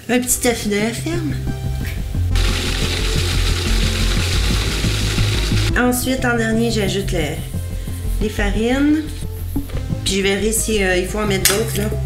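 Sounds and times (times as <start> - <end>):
background music with bass: 0.0 - 12.0
food processor blending: 2.4 - 5.7.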